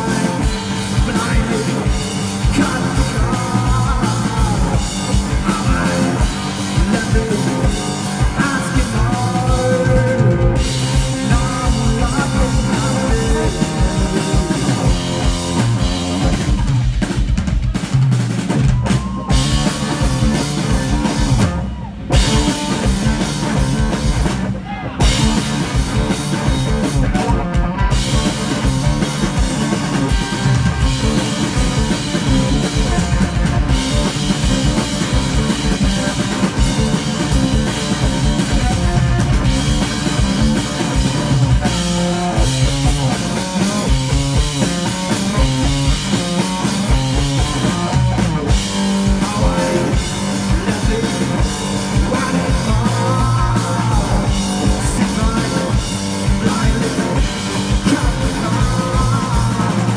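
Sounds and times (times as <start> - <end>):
live rock guitar and drums: 0.0 - 59.9.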